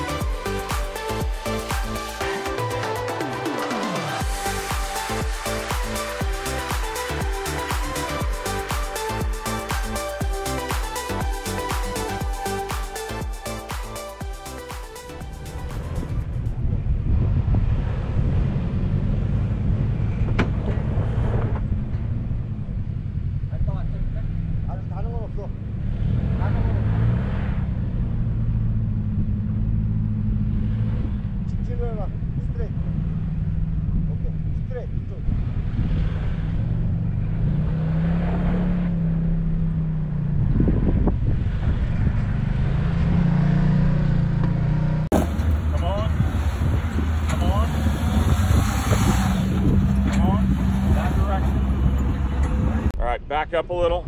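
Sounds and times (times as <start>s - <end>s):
off-road vehicle engine rumbling: 0.0s - 54.0s.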